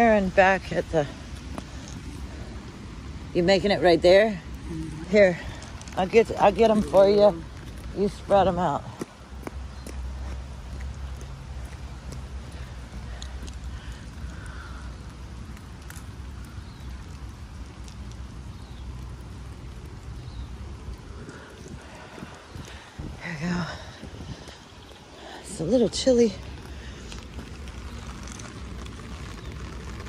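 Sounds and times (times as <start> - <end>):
faint rain ticks: 0.0 - 30.0
wind buffeting microphone: 4.0 - 30.0.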